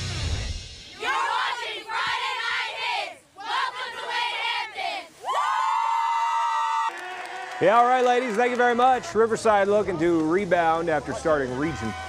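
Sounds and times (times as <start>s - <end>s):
cheerleaders high-pitched group shout: 1.0s - 7.8s, 11.5s - 12.0s.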